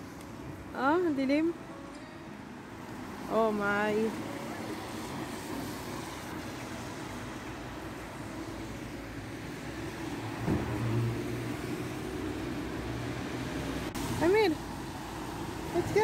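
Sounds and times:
traffic on wet road: 0.0s - 16.0s
car passing close: 4.1s - 16.0s.

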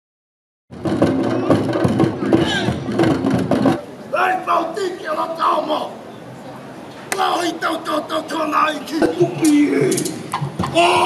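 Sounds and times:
wooden drums beating: 0.7s - 3.8s, 9.0s - 11.0s
men calling: 3.9s - 6.1s, 7.0s - 11.0s.

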